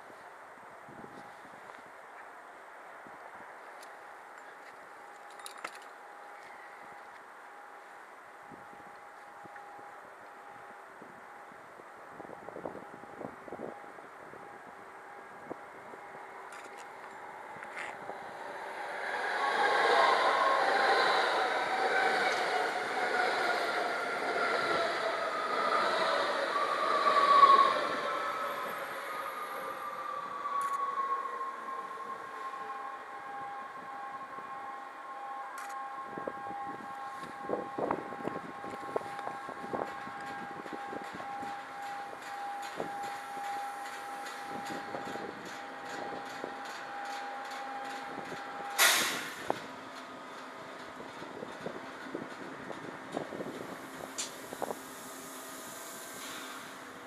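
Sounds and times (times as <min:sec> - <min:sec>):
train wheels clicking over rail joints: 0:38.6 - 0:57.0.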